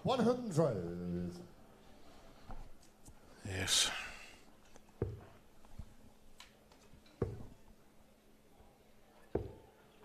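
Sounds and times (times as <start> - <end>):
dart striking dartboard: 9.4 - 9.6.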